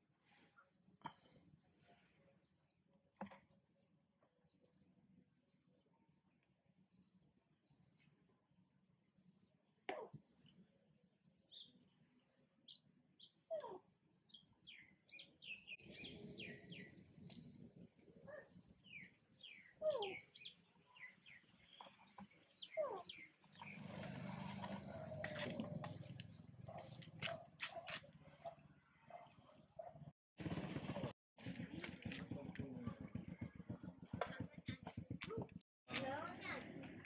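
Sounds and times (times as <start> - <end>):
small animal chirps: 19.5 - 20.5.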